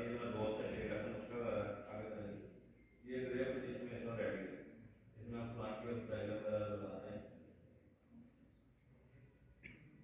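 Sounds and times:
man speaking in echoing hall: 0.0s - 7.6s.

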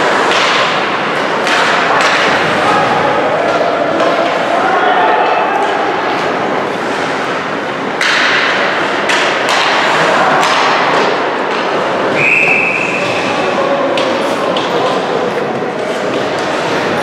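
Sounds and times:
hockey sticks and puck clacking: 0.0s - 17.0s.

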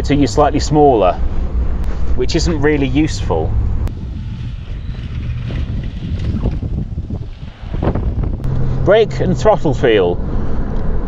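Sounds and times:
low engine hum: 0.0s - 11.0s
vehicle driving low rumble: 0.0s - 11.0s
wind buffeting microphone: 2.4s - 9.0s.

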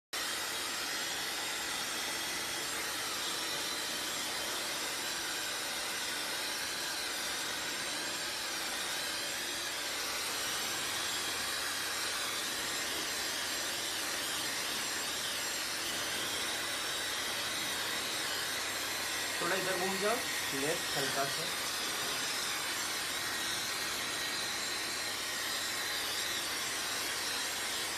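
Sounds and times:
hair dryer blowing: 0.2s - 27.9s.

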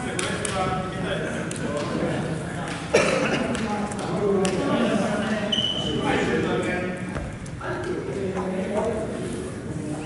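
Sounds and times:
indistinct echoing voices: 0.0s - 10.0s.

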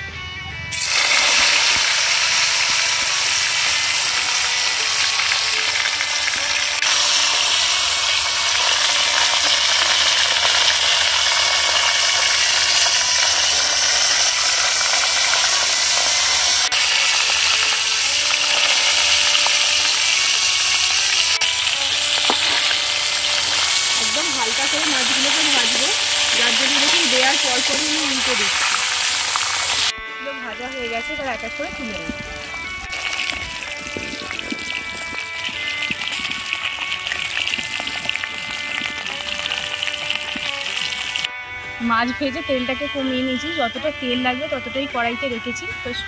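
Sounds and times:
fish sizzling in hot oil: 0.7s - 29.9s, 31.0s - 41.3s.

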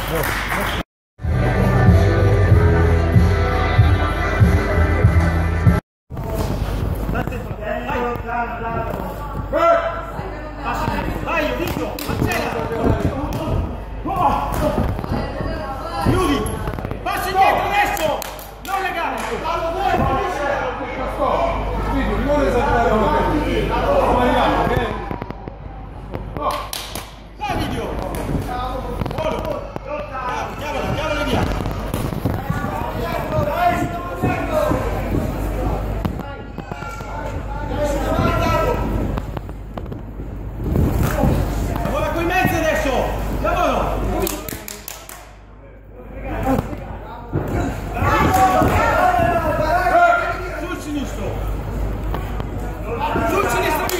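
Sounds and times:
low hum of hall: 0.0s - 53.9s.

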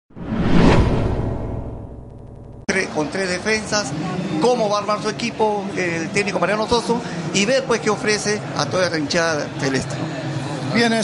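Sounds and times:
whoosh sound effect: 0.1s - 2.7s.

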